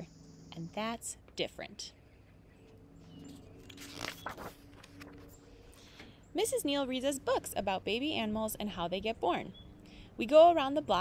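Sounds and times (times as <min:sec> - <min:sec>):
book pages turning: 0:03.5 - 0:05.4.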